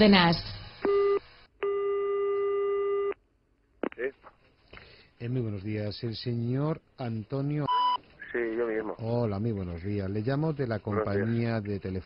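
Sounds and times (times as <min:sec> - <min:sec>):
telephone ringback tone: 0:00.9 - 0:03.1.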